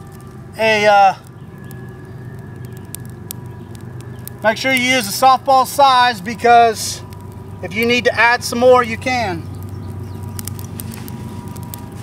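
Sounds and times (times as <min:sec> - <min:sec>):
small fire crackling: 0:00.0 - 0:12.0
steady low hum: 0:00.0 - 0:12.0.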